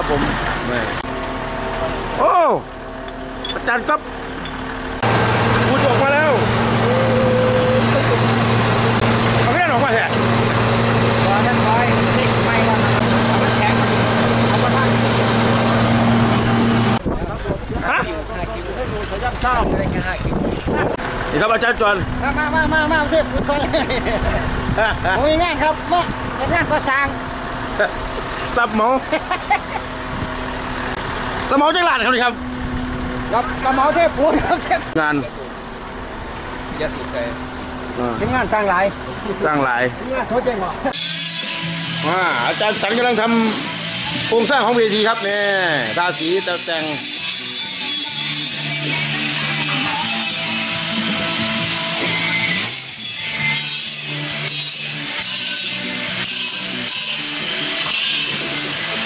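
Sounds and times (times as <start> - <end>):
concrete mixer truck engine running: 0.0 - 59.0.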